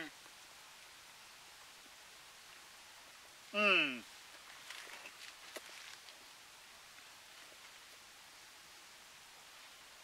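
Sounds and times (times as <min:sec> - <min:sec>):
low steady hiss: 0:00.0 - 0:10.0
faint rustles: 0:04.1 - 0:08.1.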